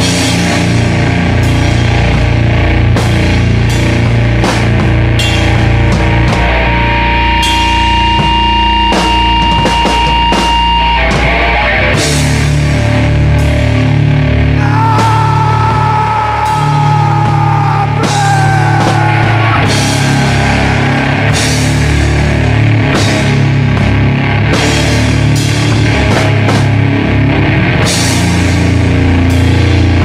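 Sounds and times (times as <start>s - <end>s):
heavy rock music: 0.0s - 30.0s
low bass drone: 0.0s - 30.0s
cymbals: 3.0s - 6.6s
steady high tone: 14.6s - 22.9s.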